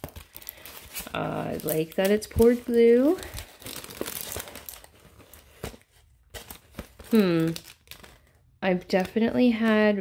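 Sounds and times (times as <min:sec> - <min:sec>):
plastic film crinkling: 0:00.0 - 0:10.0.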